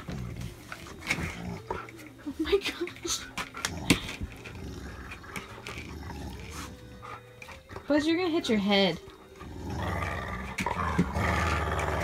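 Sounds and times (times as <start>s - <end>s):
dog growling in play: 0.0s - 2.0s, 3.4s - 7.6s, 9.2s - 12.0s.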